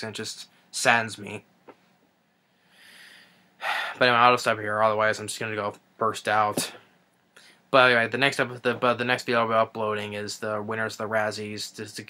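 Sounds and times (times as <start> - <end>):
man breathing while holding back tears: 2.7 - 4.0.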